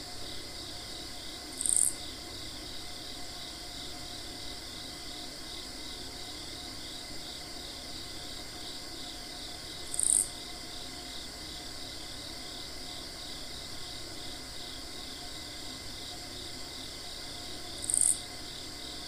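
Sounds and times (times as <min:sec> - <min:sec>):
pulsing chorus of singing insects: 0:00.0 - 0:19.0.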